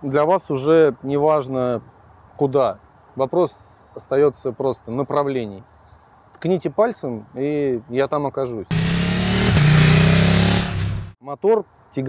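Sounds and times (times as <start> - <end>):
motorcycle engine at speed: 8.7 - 11.2.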